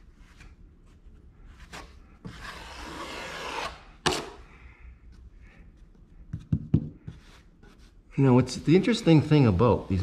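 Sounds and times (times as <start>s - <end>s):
taping knife scraping compound: 1.4s - 4.4s.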